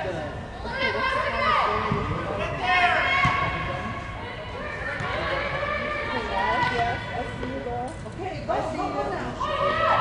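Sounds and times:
voices calling out and talking: 0.0 - 10.0.

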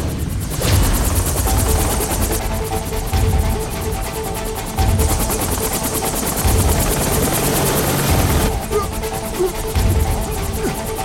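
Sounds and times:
fast chopping drone: 0.0 - 10.9
action music: 0.0 - 11.0.

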